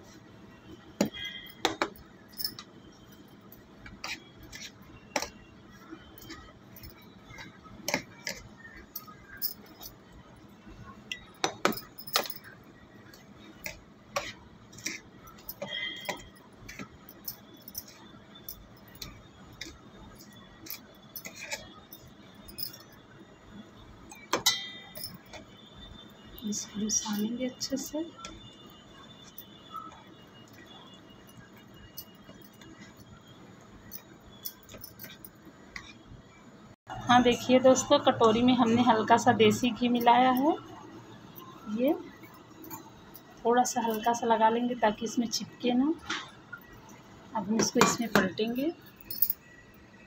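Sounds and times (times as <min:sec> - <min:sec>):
spoon clinking and scraping steel cup: 0:03.9 - 0:05.4, 0:19.0 - 0:22.0.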